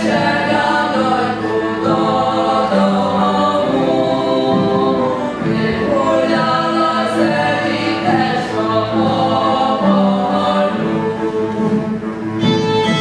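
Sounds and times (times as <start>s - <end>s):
group of voices singing: 0.0s - 12.3s
fiddle melody: 0.0s - 13.0s.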